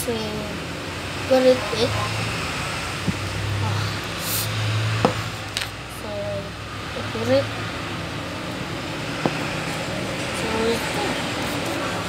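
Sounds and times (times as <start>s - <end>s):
handling noise hiss: 3.0s - 5.8s.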